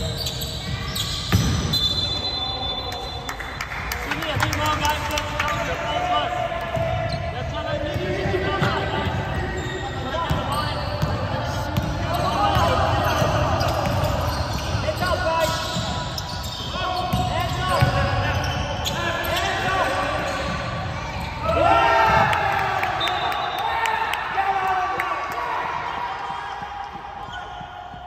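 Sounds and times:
sneakers squeaking: 0.0s - 28.0s
players calling out: 4.0s - 28.0s.

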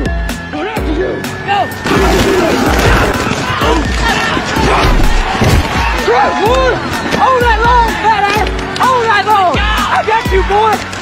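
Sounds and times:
music: 0.0s - 11.0s
players shouting and grunting: 0.4s - 10.9s.

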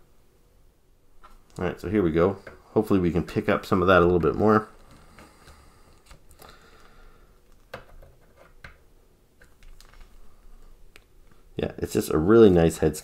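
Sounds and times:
soft clicks and rustles: 4.0s - 11.5s
plastic toy handling noise: 4.2s - 11.4s.

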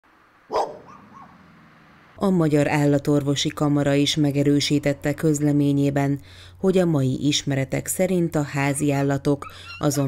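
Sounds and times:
dog barking: 0.5s - 1.4s.

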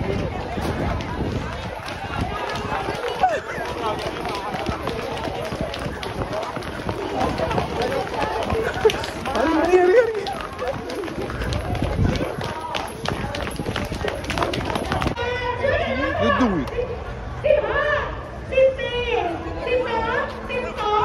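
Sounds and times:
crowd running on pavement: 0.0s - 17.1s.

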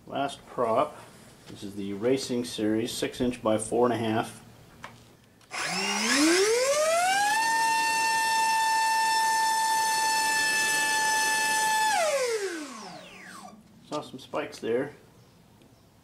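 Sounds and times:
electric motor propeller whine: 5.5s - 13.6s.

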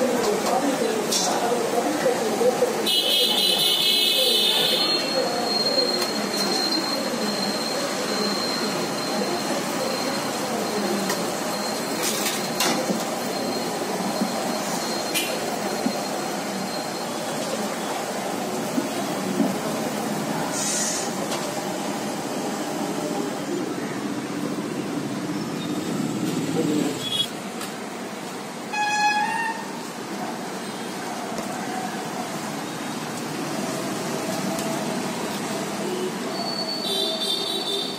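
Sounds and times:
indistinct voices: 0.0s - 27.3s
passing motorbike traffic: 0.0s - 37.9s.

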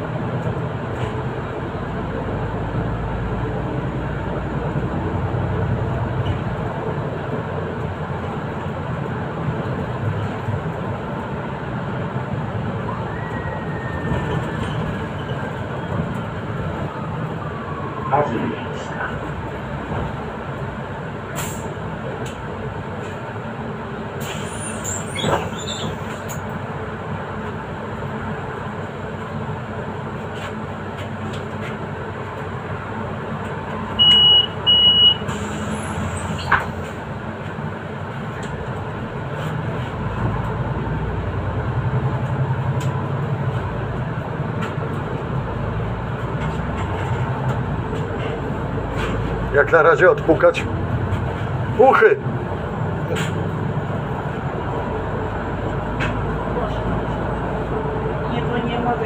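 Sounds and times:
bus engine running: 0.0s - 59.0s.

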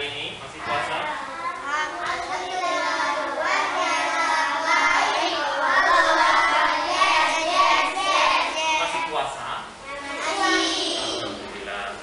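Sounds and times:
children singing in unison: 2.4s - 9.0s, 10.0s - 11.4s.

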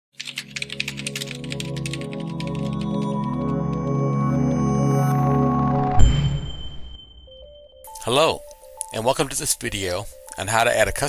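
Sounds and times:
computer keyboard typing: 0.2s - 4.0s
low music drone: 1.2s - 8.7s.

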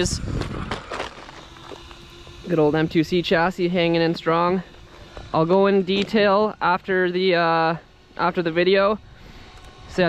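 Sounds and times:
tyres crunching on gravel: 0.0s - 7.0s.

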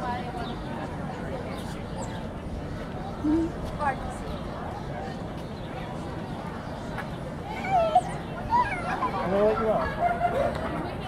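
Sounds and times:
outdoor crowd noise: 0.0s - 11.0s.

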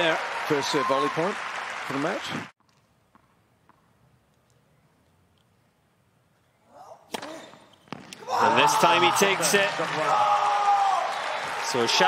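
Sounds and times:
racket striking tennis ball: 7.1s - 8.2s.

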